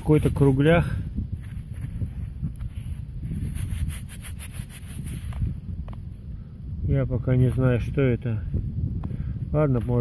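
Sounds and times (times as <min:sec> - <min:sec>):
gloved fingers scraping soil: 0:00.0 - 0:06.1
wind rumble on microphone: 0:00.0 - 0:10.0.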